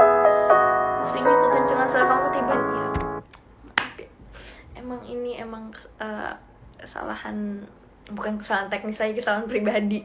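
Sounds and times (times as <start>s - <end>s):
piano playing sustained chords: 0.0s - 3.2s.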